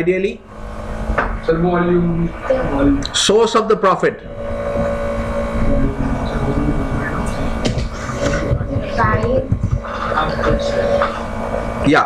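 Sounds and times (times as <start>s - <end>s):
low rumble: 0.0s - 3.2s, 4.1s - 12.0s
electrical hum: 0.0s - 12.0s
distant voices of students: 4.3s - 11.9s.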